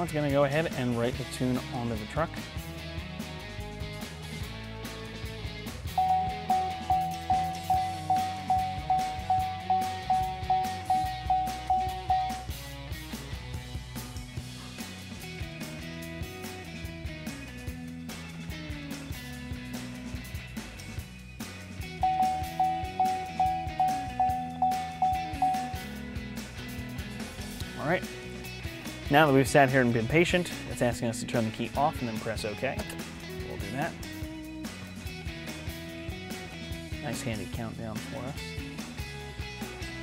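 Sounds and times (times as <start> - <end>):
background music: 0.0 - 40.0
dashboard warning chime dings: 6.0 - 12.6, 22.0 - 26.0.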